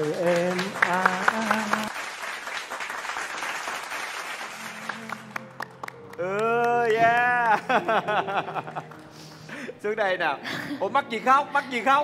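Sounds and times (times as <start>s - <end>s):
audience applauding: 0.0s - 9.7s.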